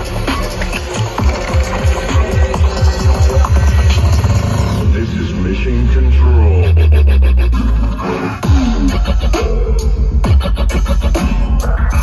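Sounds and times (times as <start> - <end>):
electronic bass music: 0.0 - 12.0.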